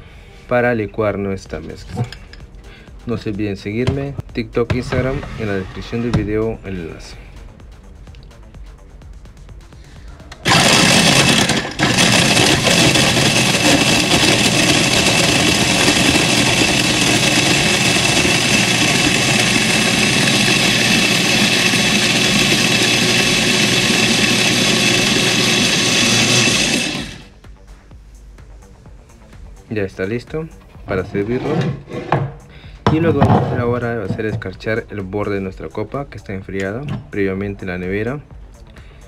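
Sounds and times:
blender crushing ice: 10.4s - 27.3s.

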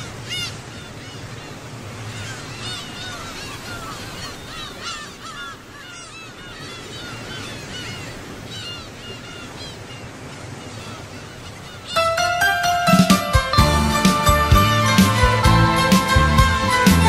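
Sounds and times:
gulls calling: 0.0s - 17.0s
surf wash: 0.0s - 17.0s
music: 12.0s - 17.0s.

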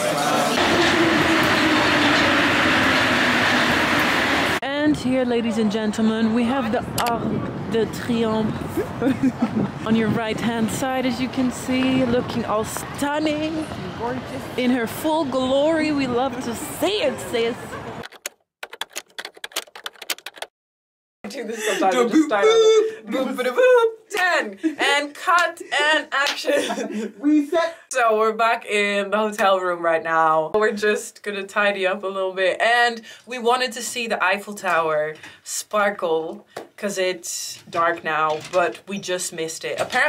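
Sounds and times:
train rumble and hiss: 0.3s - 4.6s
keyboard typing clicks: 18.0s - 20.5s.

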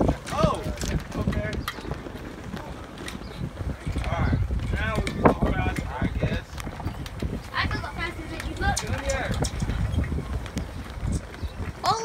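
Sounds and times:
low wind rumble on microphone: 0.0s - 12.0s.

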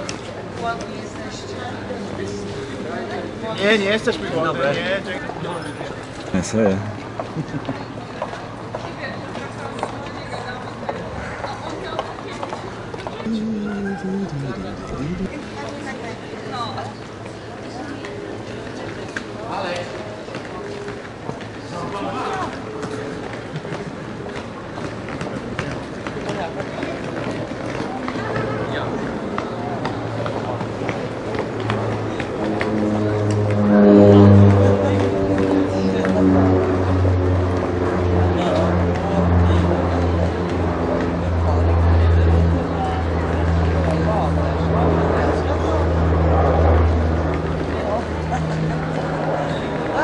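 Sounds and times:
voices of passers-by: 0.0s - 50.0s
indistinct voices: 13.2s - 15.4s
low motor drone: 13.3s - 15.4s, 30.2s - 50.0s.

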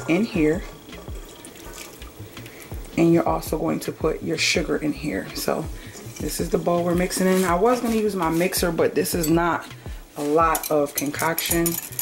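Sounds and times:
liquid pouring and trickling: 0.0s - 3.0s.

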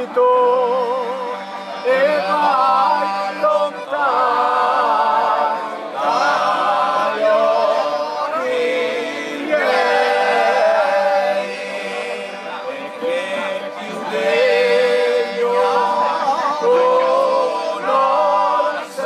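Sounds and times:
accordion low notes: 0.0s - 19.0s
men singing folk song: 0.0s - 19.0s.

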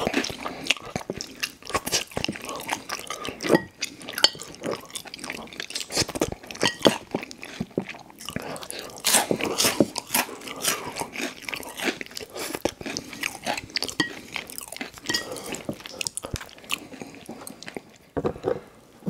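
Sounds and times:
crunchy chewing: 0.0s - 18.1s.

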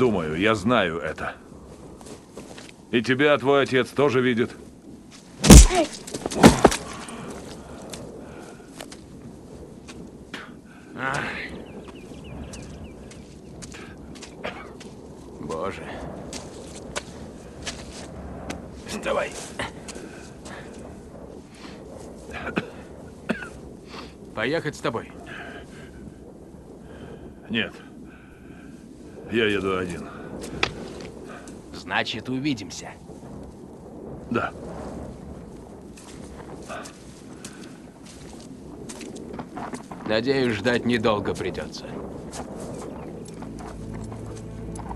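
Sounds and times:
outdoor ambience: 0.0s - 44.9s
scuffling on muddy ground: 5.1s - 9.2s, 11.9s - 15.3s, 16.2s - 18.7s, 35.9s - 40.2s, 41.3s - 44.9s
low steady drone: 42.7s - 44.9s.

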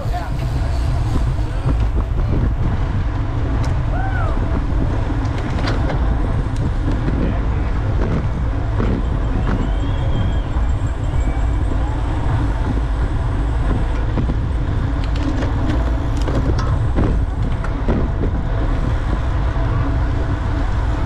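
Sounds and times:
tyre and road noise: 0.0s - 21.0s
wind rumble on microphone: 0.0s - 21.0s.

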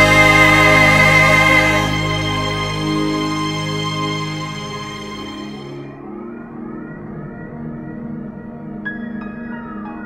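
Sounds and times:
faint rising synth sweeps: 0.0s - 6.0s
sustained low synth chords: 0.0s - 6.2s.

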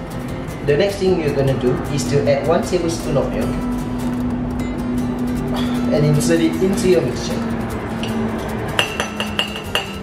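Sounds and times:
metal spoon clinking on mug: 8.8s - 10.0s.

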